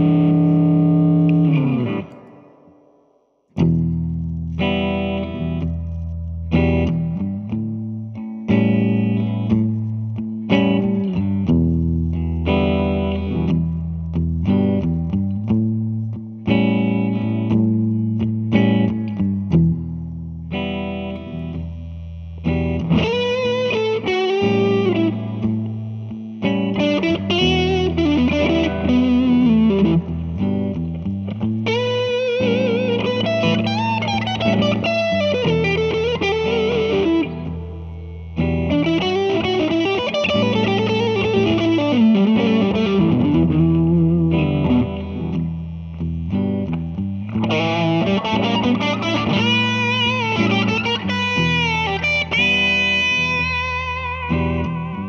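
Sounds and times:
electric guitar lead melody: 0:00.0 - 0:55.0.

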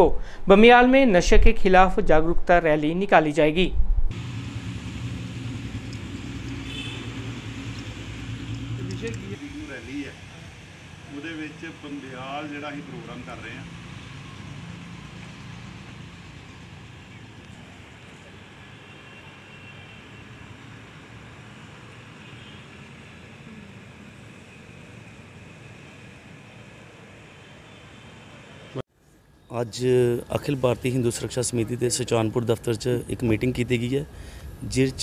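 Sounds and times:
low outdoor rumble: 0:03.4 - 0:18.4
low rumble: 0:03.5 - 0:09.6.

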